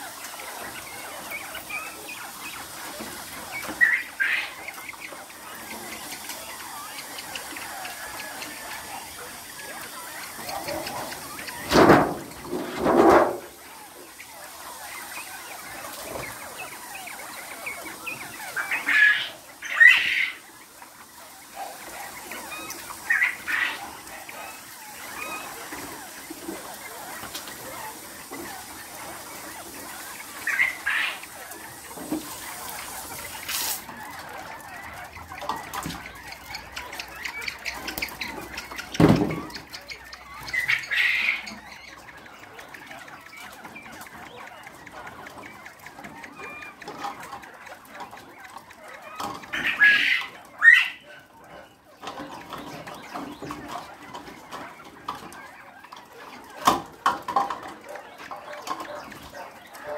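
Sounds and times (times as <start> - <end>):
quail and poultry calls: 0.0 - 59.9
cages knocking and clattering: 10.4 - 13.5.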